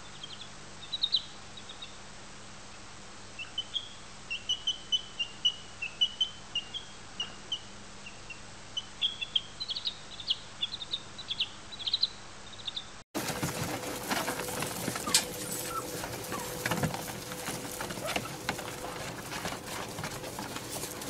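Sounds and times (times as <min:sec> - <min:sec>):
baby chick peeping: 0:00.1 - 0:02.0, 0:03.4 - 0:21.0.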